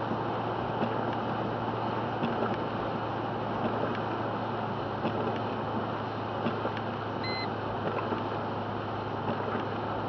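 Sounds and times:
car road and engine noise: 0.0 - 10.0
low hum: 7.1 - 7.6
short electronic beep: 7.2 - 7.5.

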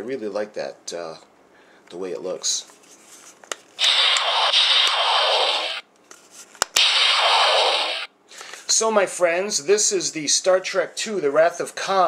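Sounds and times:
sharp clicks: 3.8 - 5.8, 6.8 - 8.1
toy hissing static blast: 3.8 - 5.8, 6.8 - 8.1.

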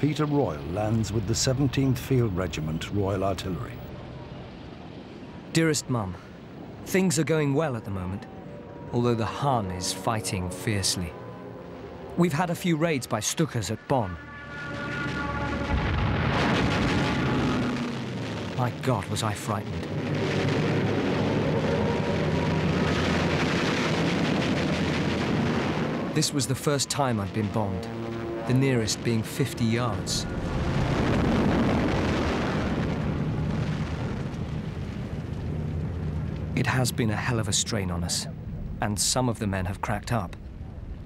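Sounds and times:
low steady drone: 0.0 - 39.3
aircraft drone: 7.7 - 18.1
rumbling bomb explosion: 14.4 - 37.3.

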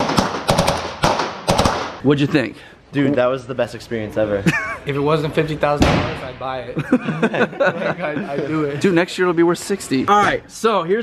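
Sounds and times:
automatic gunfire bursts echoing: 0.0 - 2.0.

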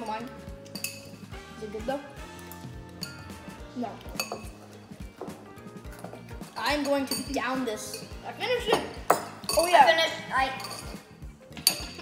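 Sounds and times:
background music with steady beat: 0.0 - 12.0
spoons clinking on glass bowls: 0.6 - 1.3, 2.4 - 3.3, 4.0 - 4.9, 5.9 - 12.0.

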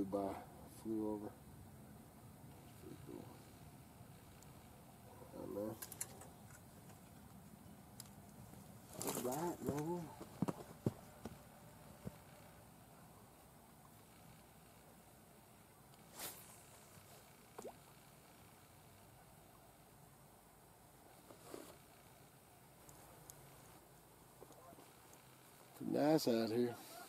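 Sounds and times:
short soft swish: 16.1 - 16.6.

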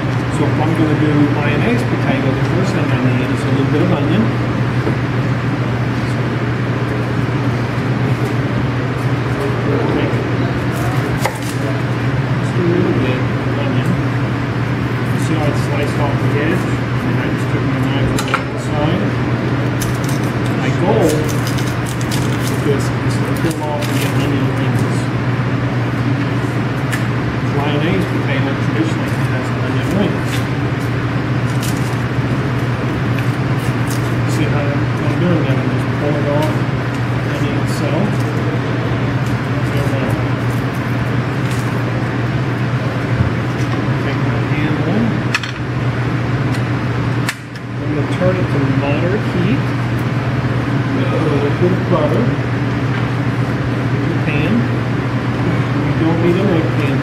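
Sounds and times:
low voices: 0.0 - 19.7, 20.3 - 31.5, 34.2 - 45.9, 47.6 - 57.0
onion skin crackling as peeled: 19.8 - 24.3, 30.2 - 34.2.

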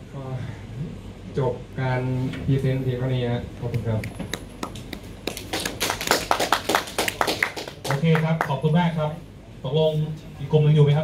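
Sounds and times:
group of people clapping: 4.0 - 8.7.

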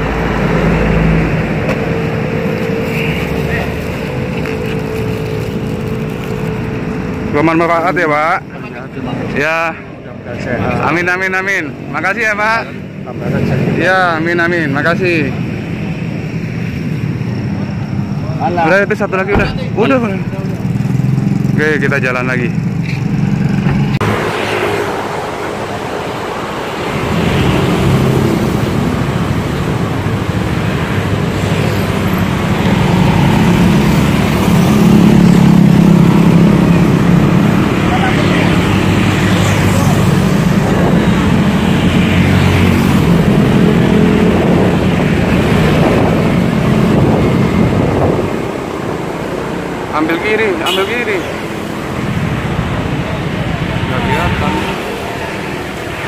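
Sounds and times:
traffic and road noise: 0.0 - 56.0.

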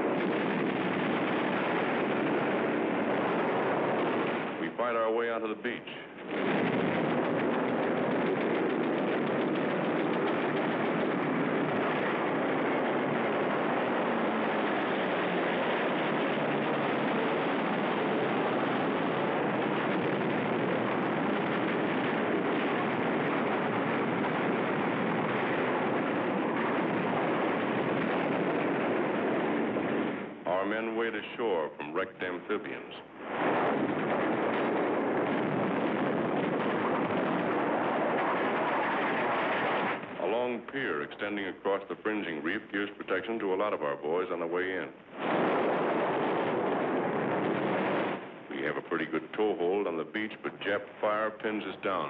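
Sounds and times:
rapid machine-gun fire: 0.0 - 4.6, 6.2 - 30.4, 33.2 - 40.2, 45.1 - 48.4.

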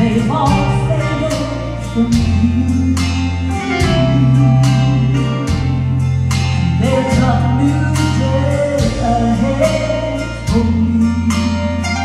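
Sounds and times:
woman singing gospel song: 0.0 - 5.9, 6.6 - 12.0
strummed guitar and bass: 0.0 - 12.0.

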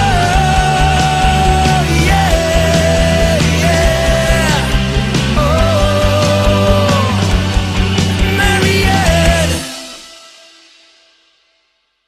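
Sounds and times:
rock band playing: 0.0 - 11.2.

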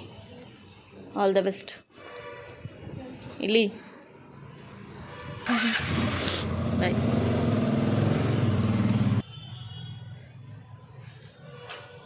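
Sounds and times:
motorcycle engine running: 5.7 - 9.2.

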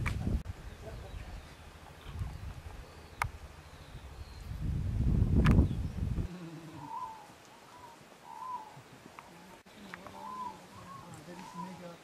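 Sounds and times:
low rumble on microphone: 0.0 - 6.5
bird calling: 5.6 - 12.0.

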